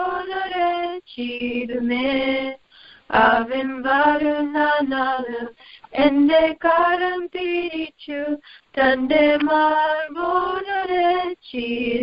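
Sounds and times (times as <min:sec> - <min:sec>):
woman singing over a telephone: 0:00.0 - 0:12.0.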